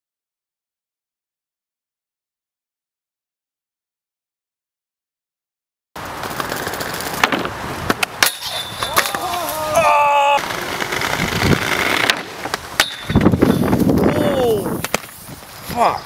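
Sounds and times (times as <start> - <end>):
skate wheels rolling on bricks: 6.0 - 15.7
skates clacking on metal rail: 6.2 - 9.6, 10.4 - 13.8.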